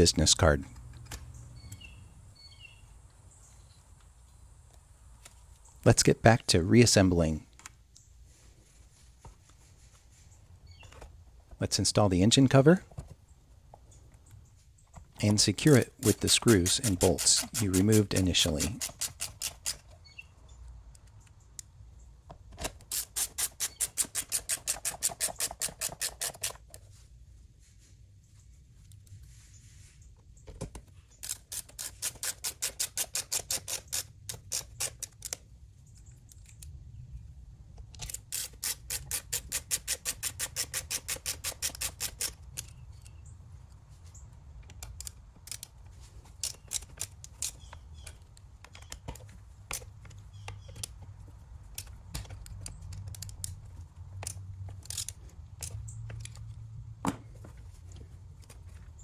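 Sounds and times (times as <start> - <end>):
ratcheting screwdriver clicking: 31.2 - 35.4, 38.0 - 43.1, 44.7 - 45.8, 51.7 - 53.6, 54.2 - 56.5.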